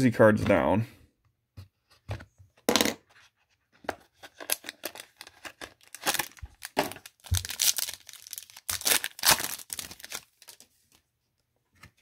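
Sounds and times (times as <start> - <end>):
plastic crackle: 4.5 - 10.6.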